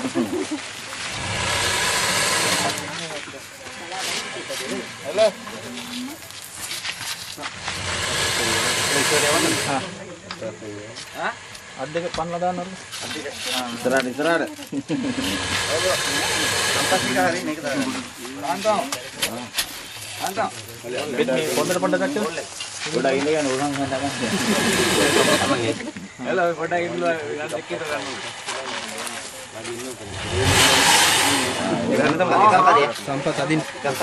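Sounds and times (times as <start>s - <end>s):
crocodile hissing: 1.0s - 5.7s, 7.4s - 10.1s, 14.9s - 18.2s, 23.4s - 25.9s, 30.0s - 31.9s
low voices talking: 7.4s - 34.0s.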